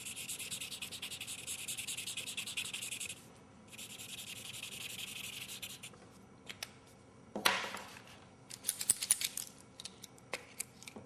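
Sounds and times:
marker scribbling on paper: 0.0s - 5.9s.

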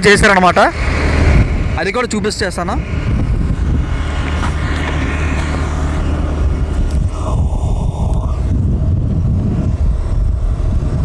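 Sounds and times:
motorcycle engine cruising: 0.0s - 11.0s
road noise: 0.0s - 11.0s
wind noise: 0.0s - 11.0s.

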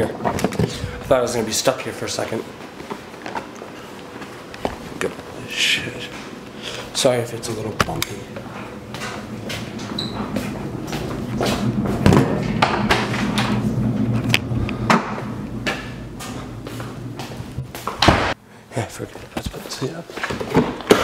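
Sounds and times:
steady low hum: 0.0s - 20.2s
footsteps: 2.3s - 5.4s, 6.0s - 13.8s, 14.8s - 18.4s
door being worked: 9.0s - 16.5s.

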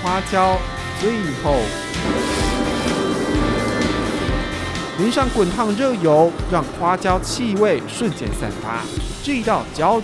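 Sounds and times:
background music: 0.0s - 10.0s
hot oil sizzling: 1.6s - 10.0s.

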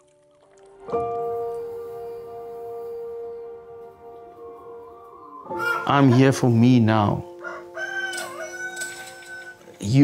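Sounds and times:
soft ambient music: 0.0s - 10.0s
rooster crowing: 7.3s - 9.7s.

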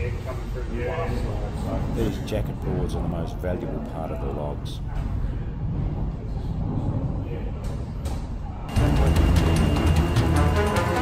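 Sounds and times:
conveyor machinery rumble: 0.0s - 11.0s
background music with beat: 8.7s - 11.0s.

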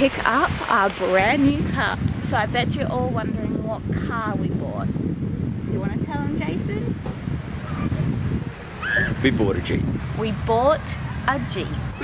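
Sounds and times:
short high arching call: 8.8s - 9.2s.

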